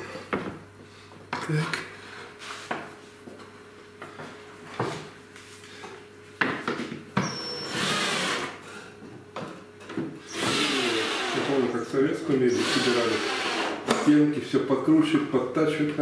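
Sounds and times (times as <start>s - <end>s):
knocks and clicks of handling parts: 6.4s - 7.1s
cordless drill driving screws: 7.5s - 8.5s, 10.3s - 11.6s, 12.5s - 13.8s.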